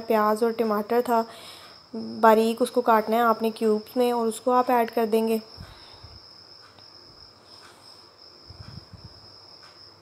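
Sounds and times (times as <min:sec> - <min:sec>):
soft low bumps: 0:08.4 - 0:09.9.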